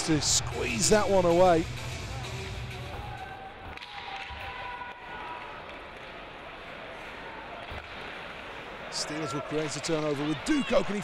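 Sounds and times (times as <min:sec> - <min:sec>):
arena crowd noise: 0:00.0 - 0:11.0.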